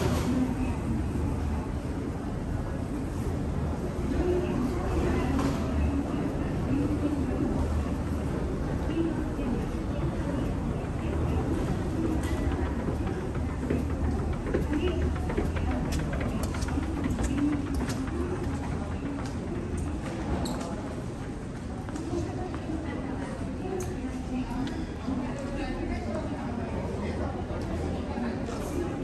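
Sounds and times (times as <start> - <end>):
indistinct voices: 0.0 - 29.0
escalator rumbling: 6.4 - 20.4.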